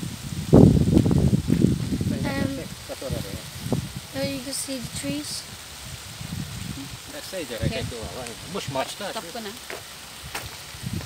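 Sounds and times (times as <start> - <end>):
steady background hiss: 0.0 - 11.0
indistinct voices talking: 2.0 - 5.6, 6.7 - 9.8.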